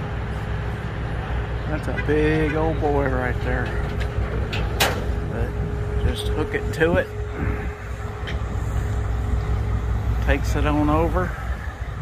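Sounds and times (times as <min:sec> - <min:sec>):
crane engine low rumble: 0:00.0 - 0:12.0.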